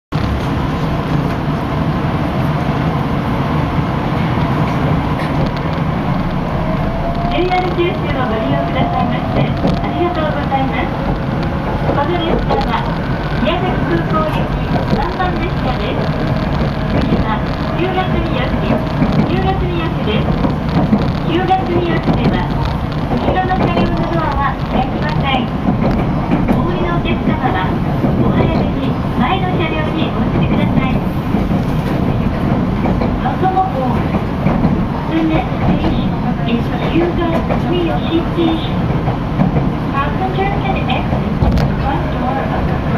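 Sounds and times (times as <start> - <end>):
train running rumble: 0.1 - 42.9
person talking: 11.9 - 16.1, 21.2 - 22.6, 23.2 - 25.6, 26.5 - 31.0.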